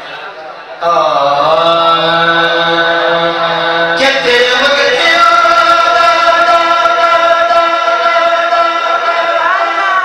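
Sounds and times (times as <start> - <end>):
man singing unaccompanied: 0.8 - 10.0.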